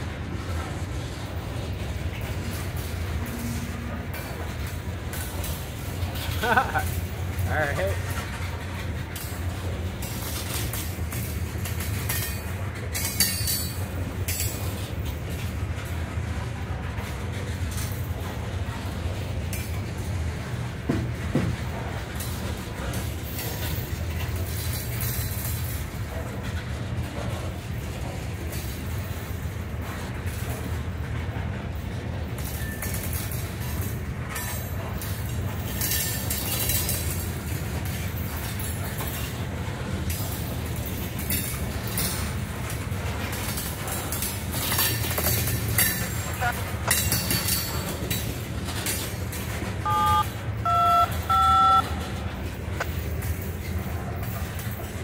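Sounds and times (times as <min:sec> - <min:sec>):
train clanks and squeals: 0:00.0 - 0:55.0
train wheels rumbling on rail: 0:00.0 - 0:55.0
two-tone radio beeps: 0:46.3 - 0:46.6, 0:49.9 - 0:51.9.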